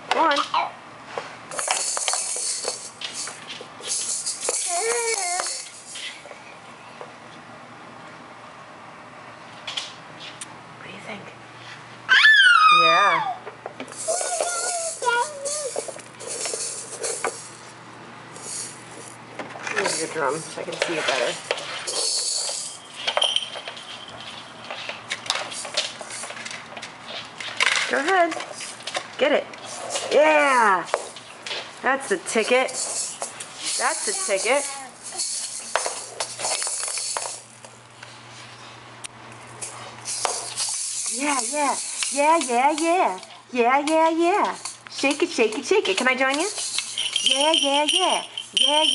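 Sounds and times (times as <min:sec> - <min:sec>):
plastic egg shaker rattling: 0:01.5 - 0:06.2, 0:13.9 - 0:17.8, 0:18.4 - 0:24.4, 0:25.3 - 0:26.6, 0:32.3 - 0:37.5, 0:39.6 - 0:43.2, 0:44.0 - 0:48.9
baby vocalizing: 0:04.6 - 0:05.7.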